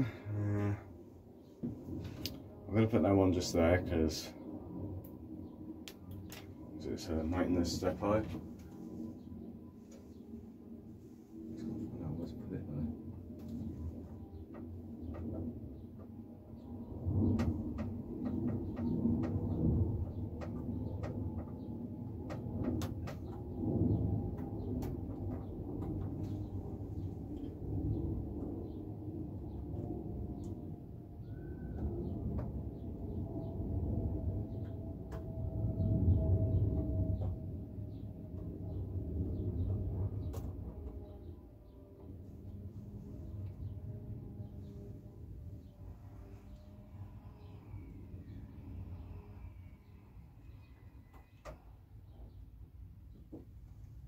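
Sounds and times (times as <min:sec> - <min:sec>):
low rustling rumble: 0:00.0 - 0:49.7.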